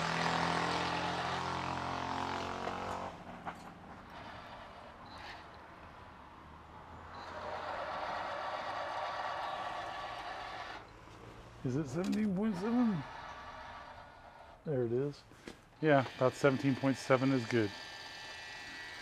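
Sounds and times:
tapping machine motor running: 4.0 - 5.7, 7.1 - 11.0, 15.8 - 19.0.

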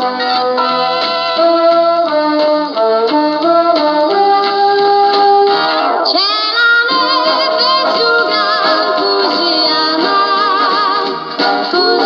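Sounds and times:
orchestral backing: 0.0 - 12.0
woman singing with vibrato: 6.1 - 11.1, 11.7 - 12.0.

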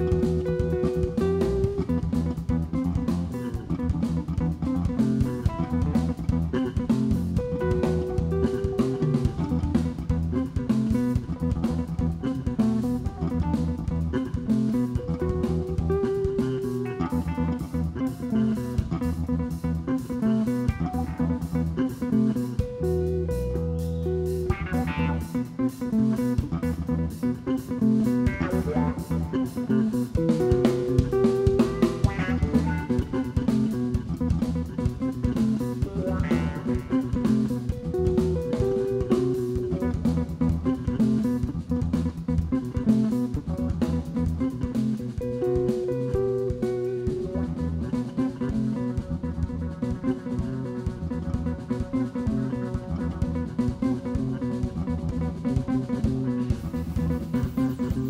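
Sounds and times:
bass: 0.0 - 58.0
drum kit beat: 0.0 - 58.0
guitar lines: 0.0 - 58.0.

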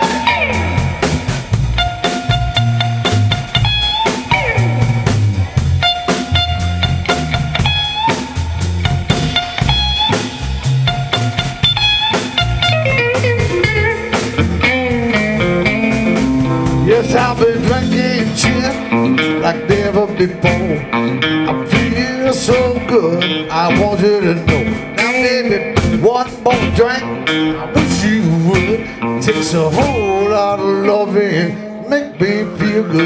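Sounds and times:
bass guitar: 0.0 - 33.0
drum kit: 0.0 - 33.0
electric guitar: 0.0 - 33.0.

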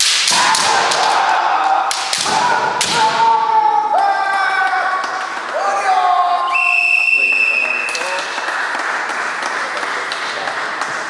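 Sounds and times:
bamboo swords clacking: 0.0 - 3.3
long loud shouts: 0.3 - 7.0.

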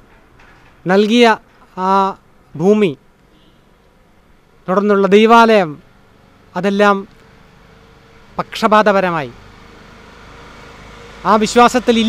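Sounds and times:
low steady engine rumble: 0.0 - 12.0
man speaking: 0.9 - 3.0, 4.7 - 5.8, 6.6 - 7.1, 8.4 - 9.4, 11.2 - 12.0.

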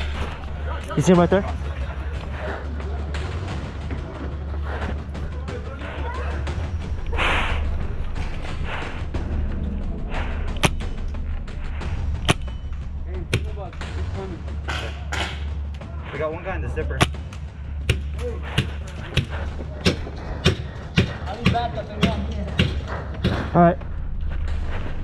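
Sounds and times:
steady low rumble: 0.0 - 25.0.

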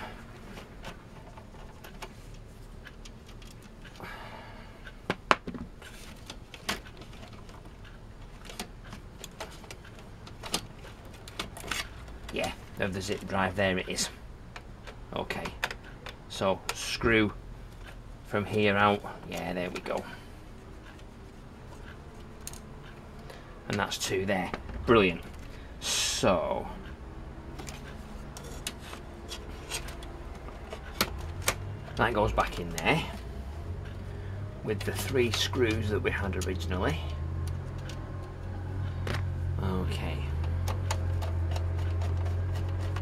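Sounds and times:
low steady hum: 0.0 - 43.0
metallic clicks and knocks: 5.1 - 13.3, 20.8 - 25.6, 40.3 - 43.0
metal scrape: 27.6 - 31.0.

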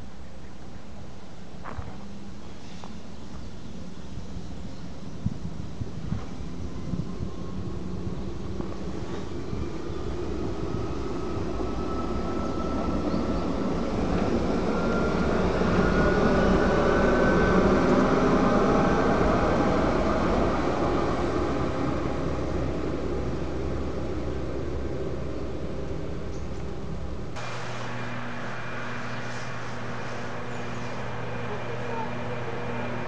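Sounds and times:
railcar wheels and cog drive rumbling: 0.0 - 33.0
rising whining tone: 6.3 - 33.0.

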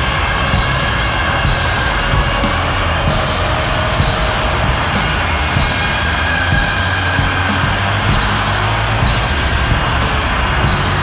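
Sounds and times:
distorted noise rock: 0.0 - 11.0
drums: 0.0 - 11.0.

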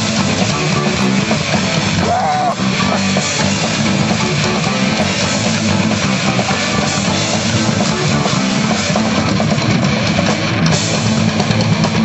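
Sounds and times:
rock band playing loud: 0.0 - 12.0.

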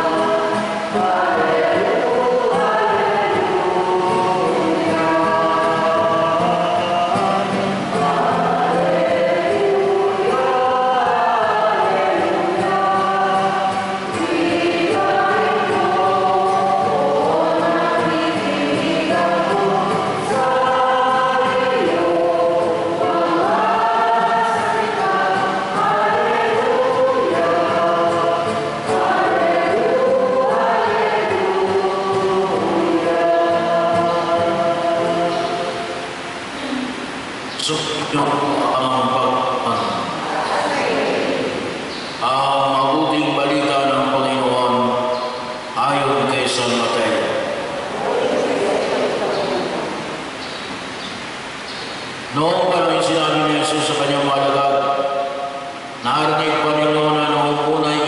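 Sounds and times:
church choir singing hymn: 0.0 - 58.0.

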